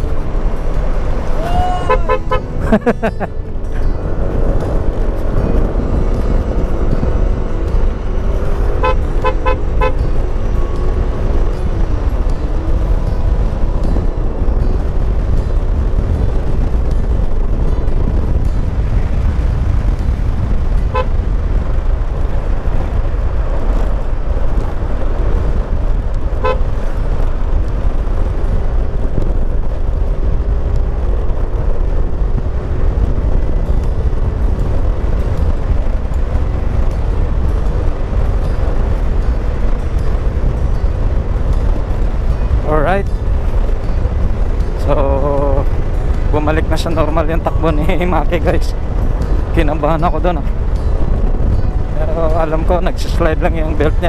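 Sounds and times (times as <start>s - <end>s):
wind noise on microphone: 0.0s - 54.0s
short horn beeps: 8.8s - 10.0s, 20.9s - 21.1s, 26.4s - 26.7s.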